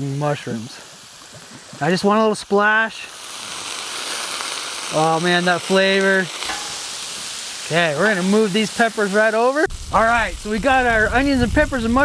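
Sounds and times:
vegetables sizzling on griddle: 0:00.0 - 0:12.0
liquid splashing onto hot griddle: 0:00.7 - 0:12.0.

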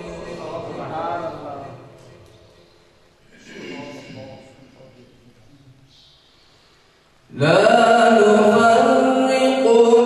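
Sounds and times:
man reciting melodically: 0:07.3 - 0:10.0.

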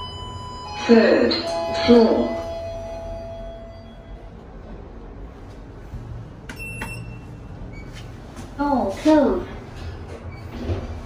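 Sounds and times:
lift arrival chime: 0:00.0 - 0:04.8.

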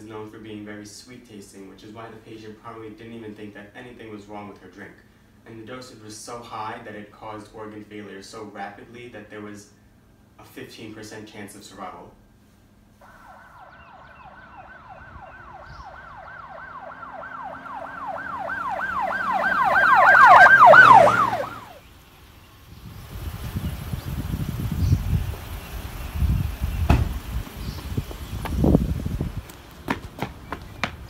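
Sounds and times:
police siren yelping: 0:13.0 - 0:21.8
sharp thumps: 0:26.8 - 0:28.6.

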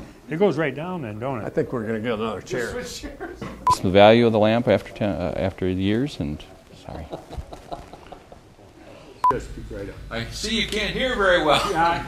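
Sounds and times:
men speaking: 0:00.0 - 0:12.0.

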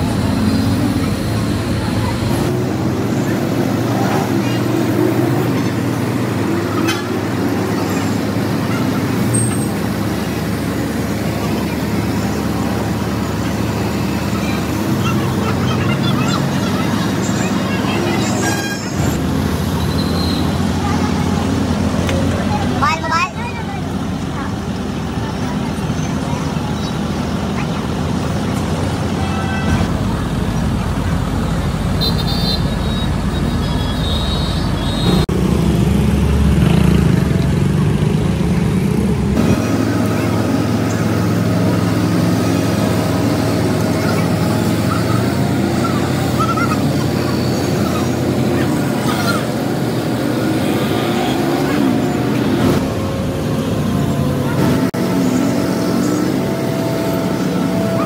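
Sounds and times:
large vehicle engine running: 0:00.0 - 0:58.0
street traffic noise: 0:00.0 - 0:58.0
voices: 0:00.0 - 0:58.0.

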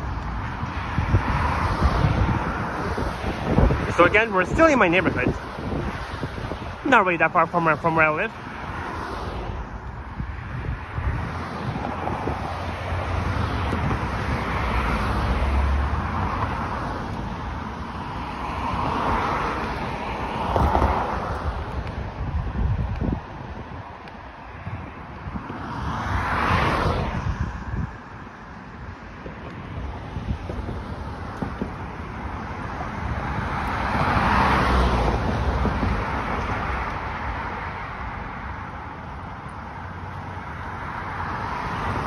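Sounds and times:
cars passing: 0:00.0 - 0:42.0
wind rumbling on microphone: 0:00.0 - 0:42.0.

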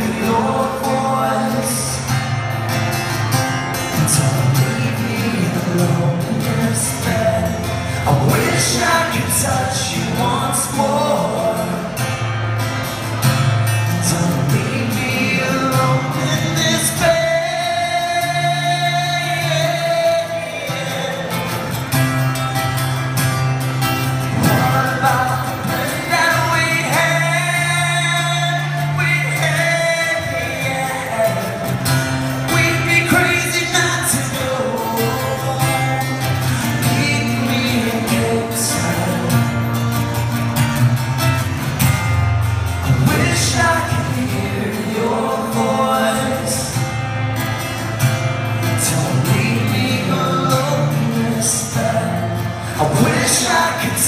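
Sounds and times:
acoustic guitar: 0:00.0 - 0:54.0
rock band playing live: 0:00.0 - 0:54.0
person singing: 0:48.7 - 0:54.0.

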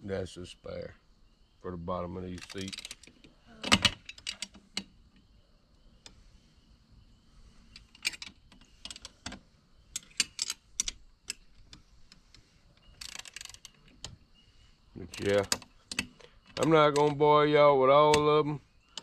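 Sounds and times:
ratchet wrench clicking: 0:13.0 - 0:13.7.

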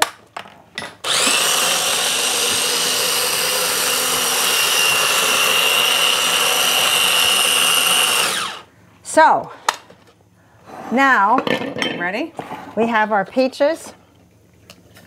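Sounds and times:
blender motor spinning down: 0:01.0 - 0:08.7
electric blender running: 0:01.0 - 0:08.7.

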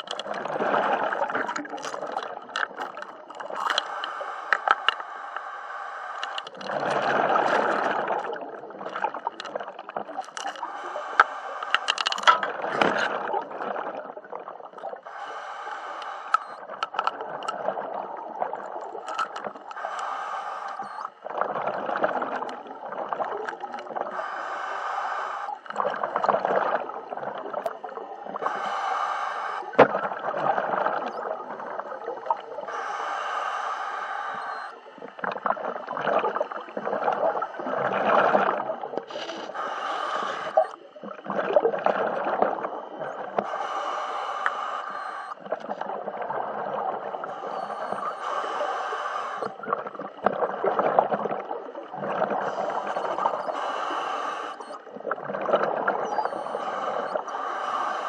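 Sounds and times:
bubbling exhaled air: 0:00.0 - 0:58.0
regulator hissing inhale: 0:03.6 - 0:06.7, 0:10.6 - 0:12.4, 0:15.0 - 0:16.7, 0:19.1 - 0:21.1, 0:24.0 - 0:25.8, 0:28.4 - 0:29.8, 0:32.6 - 0:35.1, 0:39.0 - 0:40.8, 0:43.3 - 0:45.4, 0:47.2 - 0:49.7, 0:52.4 - 0:54.8, 0:56.1 - 0:58.0.

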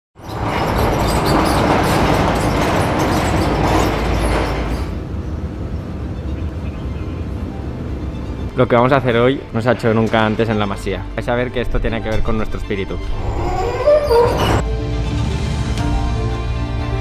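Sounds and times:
metal sliding door rattling: 0:00.2 - 0:05.2, 0:08.0 - 0:14.7.

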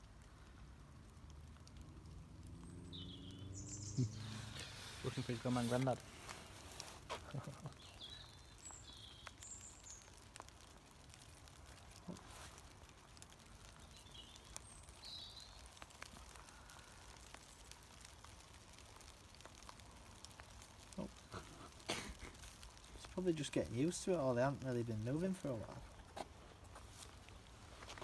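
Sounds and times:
faint clicks: 0:07.2 - 0:24.1.

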